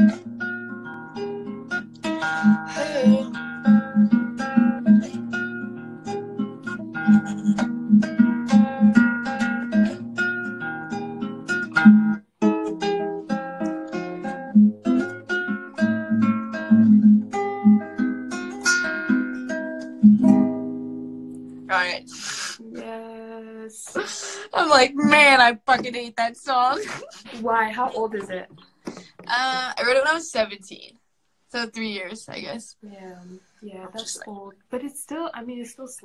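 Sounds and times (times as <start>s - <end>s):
acoustic guitar playing: 0.0s - 30.9s, 31.5s - 36.0s
person laughing: 2.2s - 3.4s, 7.0s - 7.7s, 26.7s - 27.6s.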